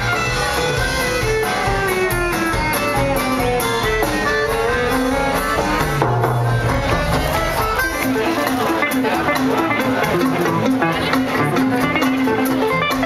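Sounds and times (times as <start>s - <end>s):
drums: 0.0s - 13.0s.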